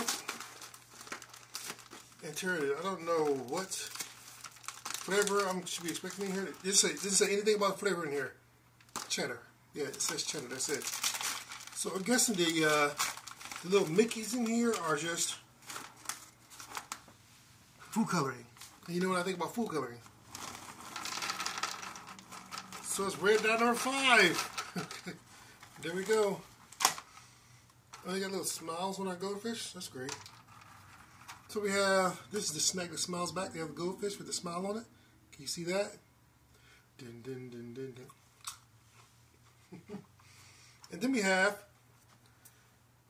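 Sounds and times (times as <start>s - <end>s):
plastic snack bag crinkling: 0.0s - 8.0s, 8.8s - 17.0s, 17.9s - 27.2s, 29.9s - 31.8s.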